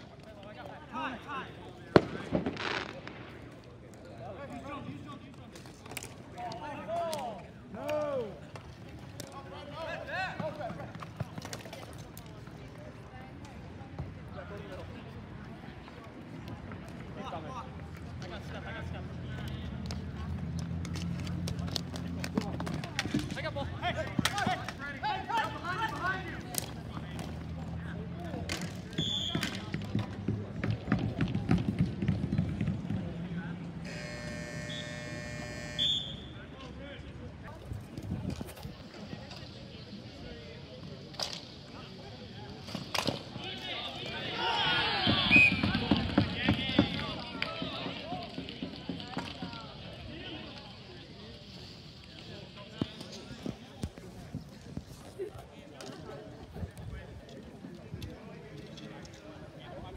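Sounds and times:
players' voices: 0:00.0 - 0:59.9.

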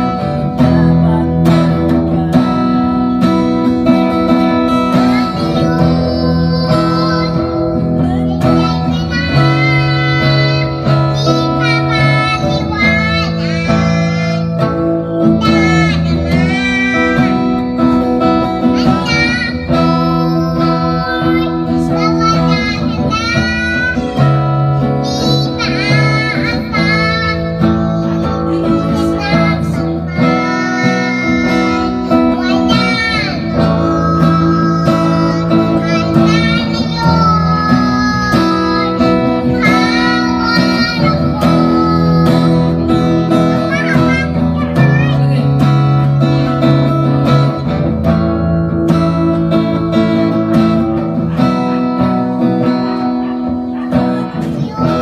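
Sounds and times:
acoustic guitar chords: 0:00.0 - 0:55.0
girl singing a slow ballad: 0:00.0 - 0:55.0.

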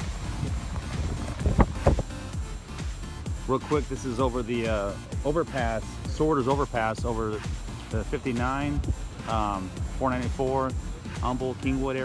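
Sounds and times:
wind buffeting microphone: 0:00.0 - 0:02.7, 0:08.4 - 0:09.2.

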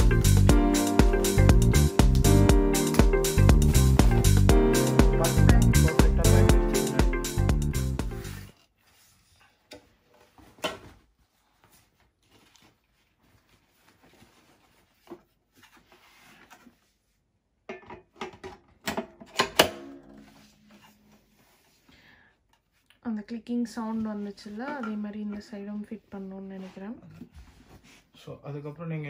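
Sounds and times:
background music: 0:00.0 - 0:08.5.

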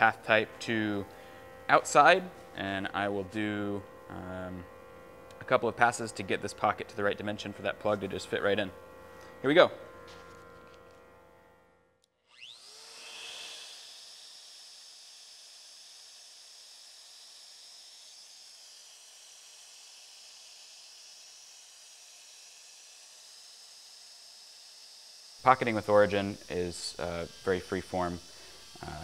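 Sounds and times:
router motor whining: 0:00.0 - 0:29.0.

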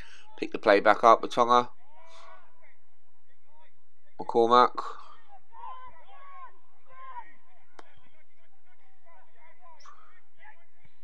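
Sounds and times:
distant voices shouting: 0:01.3 - 0:11.0.

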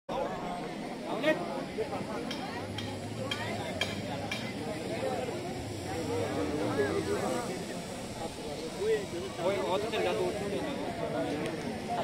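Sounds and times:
distant people talking: 0:00.1 - 0:12.0.

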